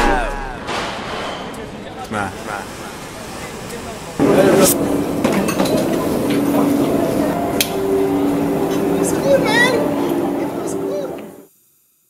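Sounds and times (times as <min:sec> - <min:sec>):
people talking casually: 0:01.7 - 0:11.4
steady low hum: 0:02.0 - 0:11.5.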